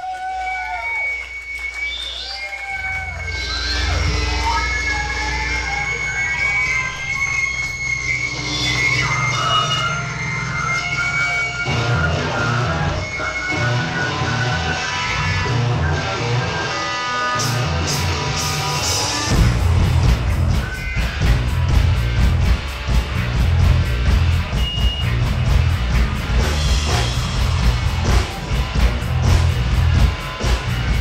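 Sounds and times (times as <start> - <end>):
live rock band playing: 3.1 - 31.0
sliding guitar notes: 3.1 - 31.0.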